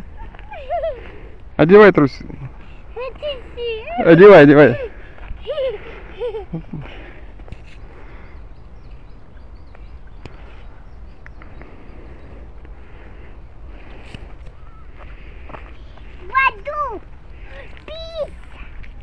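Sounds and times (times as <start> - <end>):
child's voice: 3.0 - 4.0, 16.2 - 18.7
steady low rumble: 4.8 - 19.0
faint bird chirps: 14.5 - 15.0.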